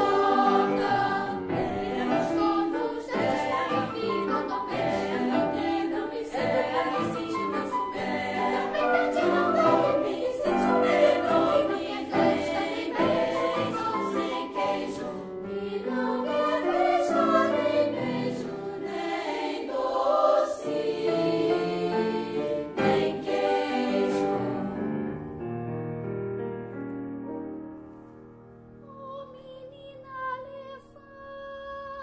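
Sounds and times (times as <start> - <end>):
children's choir singing: 0.0 - 25.0
piano: 0.0 - 32.0
woodwinds: 6.6 - 12.4.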